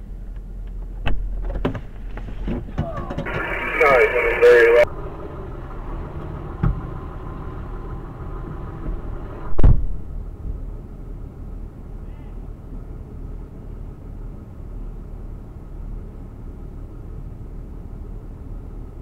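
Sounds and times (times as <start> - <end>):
vehicle engine idling: 0.0 - 19.0
garbled radio transmission: 2.9 - 4.9
loud thump: 9.6 - 10.0.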